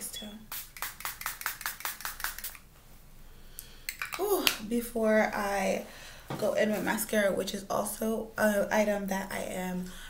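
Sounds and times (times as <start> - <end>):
pump spray bottle spritzes: 0.5 - 2.6.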